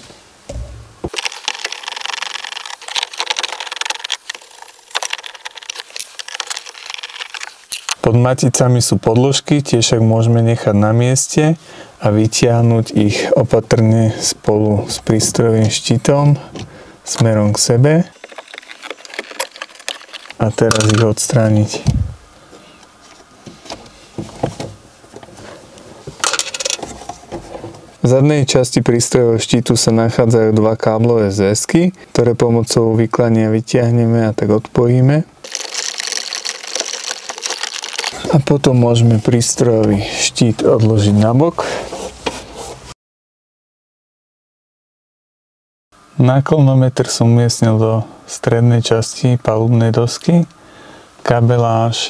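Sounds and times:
wrench thump: 0.5s - 1.2s
plastic knocking and rattling: 0.5s - 8.0s.

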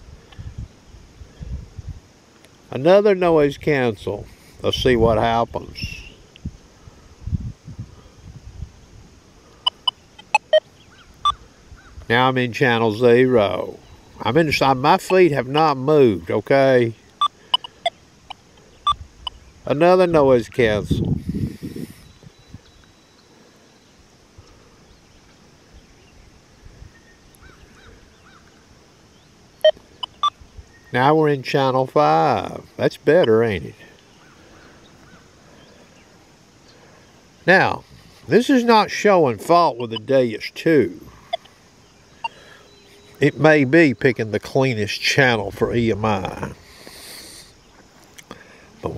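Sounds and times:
faint steady hum: 0.0s - 48.9s
faint chirps: 9.1s - 20.0s, 21.5s - 44.8s
metal detector beeps: 9.6s - 10.6s, 17.2s - 19.4s, 29.6s - 30.4s, 39.8s - 40.1s, 42.2s - 43.4s.

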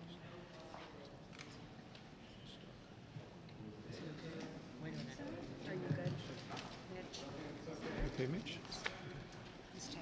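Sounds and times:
low murmur of voices: 0.0s - 10.0s.

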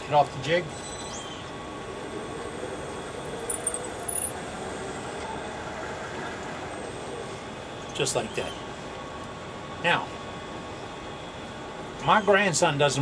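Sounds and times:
steady background hum: 0.0s - 13.0s.

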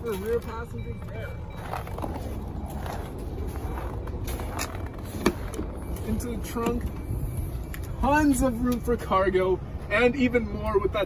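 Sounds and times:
wind rumble: 0.0s - 9.0s.

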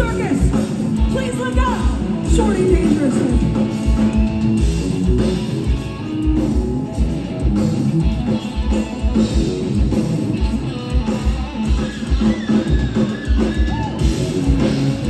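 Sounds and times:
electric guitar: 0.0s - 15.0s
rock band playing: 0.0s - 15.0s.

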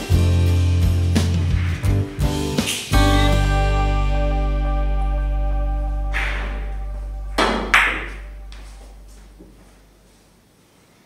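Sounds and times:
background music: 0.0s - 9.4s
billiard balls clacking: 6.1s - 6.7s, 7.4s - 9.6s.

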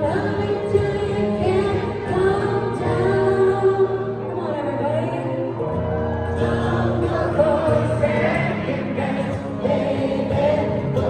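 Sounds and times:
crowd singing along: 0.0s - 11.0s
live pop song: 0.0s - 11.0s.

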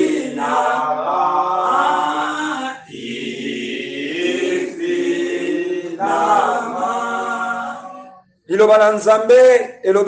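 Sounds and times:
group singing a slow hymn: 0.0s - 8.4s.

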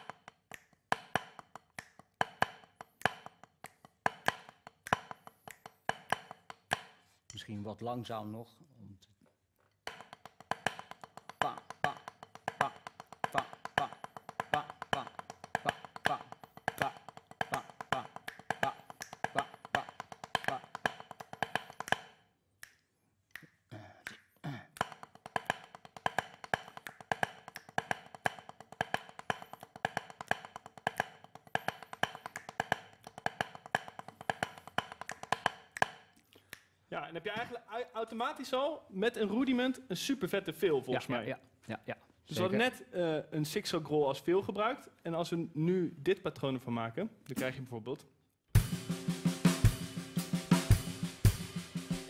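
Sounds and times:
drumsticks on a practice pad: 0.0s - 7.1s, 9.8s - 22.2s, 24.8s - 36.1s.

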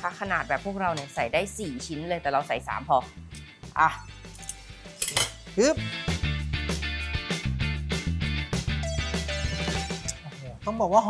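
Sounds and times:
background music: 0.0s - 11.0s
metal tongs clinking: 4.2s - 5.5s.

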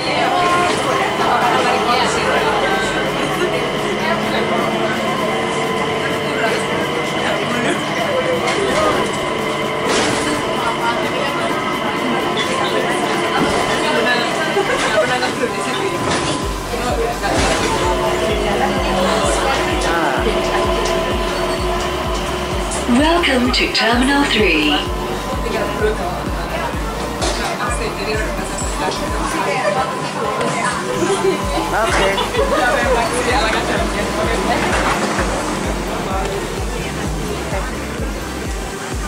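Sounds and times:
passengers' voices: 0.0s - 39.0s
train running rumble: 0.0s - 39.0s
pulsing bass music: 16.4s - 29.3s, 31.0s - 39.0s.

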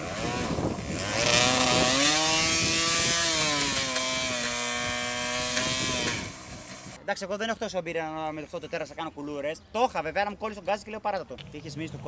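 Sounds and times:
two-stroke motorcycle engine revving: 0.0s - 7.0s.

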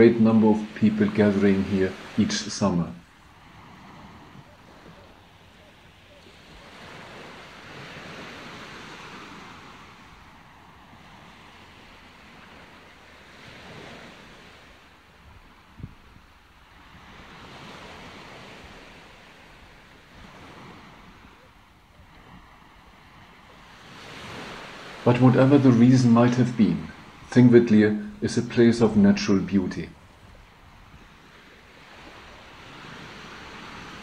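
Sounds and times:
wind blowing in gusts: 0.0s - 34.0s.

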